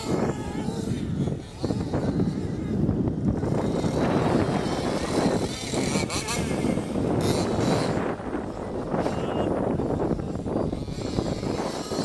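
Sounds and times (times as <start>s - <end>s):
electric motor whining: 0.0s - 12.0s
wind on microphone: 0.0s - 12.0s.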